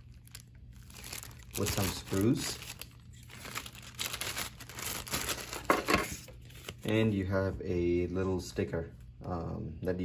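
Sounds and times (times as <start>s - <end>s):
plastic bag crinkling: 0.0s - 7.0s.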